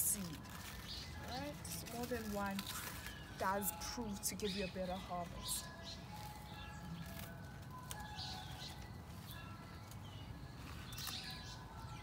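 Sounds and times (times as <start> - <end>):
leaves rustling: 0.0 - 12.0.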